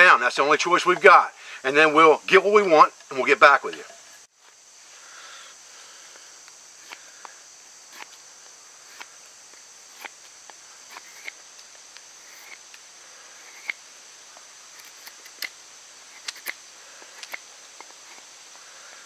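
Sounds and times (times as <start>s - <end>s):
high insect trill: 0.0s - 19.0s
knife scraping wood: 7.9s - 8.2s, 8.9s - 9.1s, 9.9s - 10.2s, 10.9s - 11.4s, 12.2s - 12.6s, 13.4s - 13.8s, 16.1s - 18.3s.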